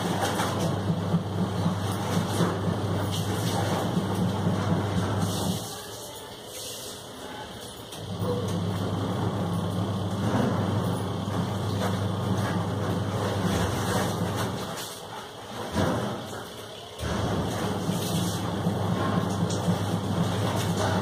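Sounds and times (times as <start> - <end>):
low machine hum: 0.0 - 5.7, 7.6 - 21.0.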